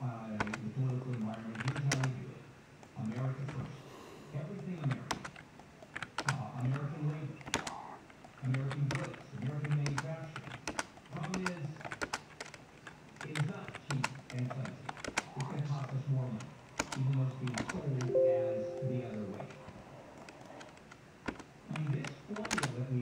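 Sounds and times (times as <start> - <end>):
sharp irregular clicks: 4.8 - 18.1, 20.2 - 23.0.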